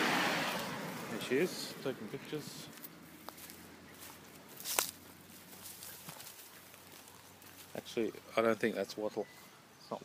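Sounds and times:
footsteps in dry scrub: 0:02.5 - 0:08.8.

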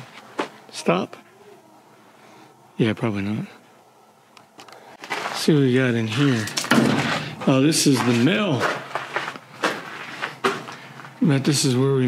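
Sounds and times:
footsteps on gravel: 0:05.0 - 0:11.2.

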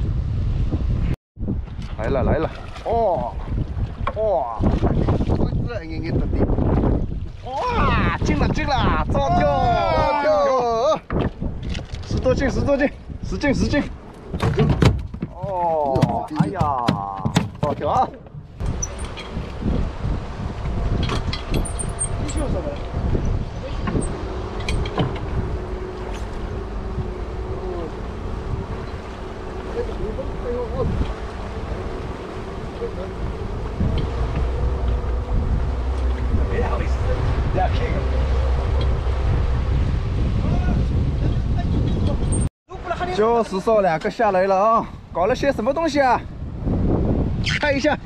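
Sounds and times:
wind buffeting microphone: 0:00.0 - 0:48.0
voices: 0:07.4 - 0:11.1, 0:15.3 - 0:18.3, 0:23.6 - 0:35.2, 0:36.0 - 0:39.4
sharp knocks: 0:14.3 - 0:19.4, 0:24.6 - 0:25.4
speedboat engine running: 0:17.8 - 0:43.1.

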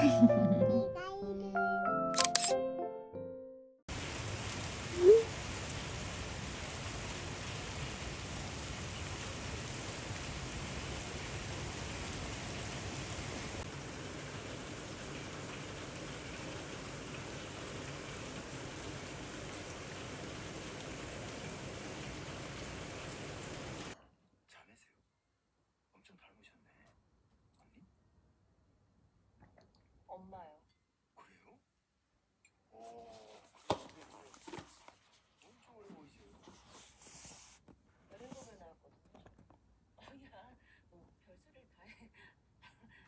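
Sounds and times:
music: 0:00.0 - 0:03.8
rain falling: 0:03.9 - 0:24.0.

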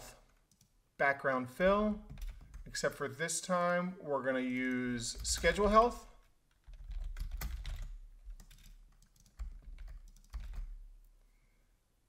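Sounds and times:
computer keyboard typing: 0:00.4 - 0:00.7, 0:01.7 - 0:02.8, 0:04.5 - 0:10.9.

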